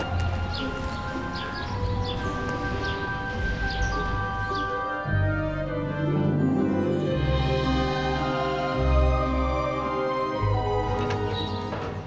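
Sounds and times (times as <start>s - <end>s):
bell-like background score: 0.0s - 11.6s.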